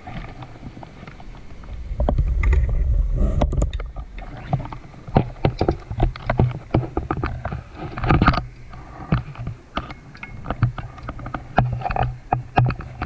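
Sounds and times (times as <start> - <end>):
underwater bubbles rumbling: 0.0 - 9.8
underwater clicks and crackles: 0.0 - 13.0.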